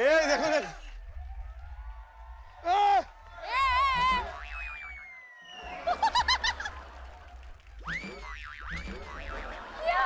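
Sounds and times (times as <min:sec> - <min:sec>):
thin gliding whistle: 0:04.4 - 0:05.8.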